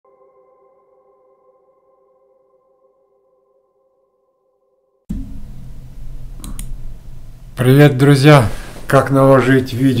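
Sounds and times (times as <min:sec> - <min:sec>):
held electronic chord: 0:00.1 - 0:07.9.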